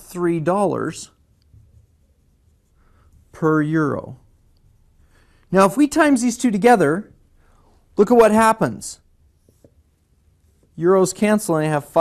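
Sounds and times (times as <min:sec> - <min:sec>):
faint marker writing on whiteboard: 0:01.0 - 0:06.1, 0:09.2 - 0:10.8.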